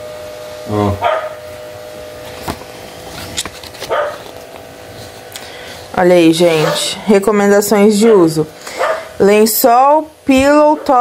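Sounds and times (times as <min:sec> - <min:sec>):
faint steady hum: 0:00.0 - 0:11.0
paper leaflets crinkling: 0:02.2 - 0:05.3.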